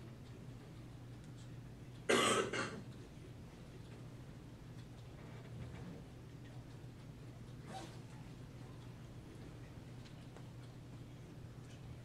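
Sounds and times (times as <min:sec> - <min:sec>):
person coughing: 0:02.1 - 0:02.8.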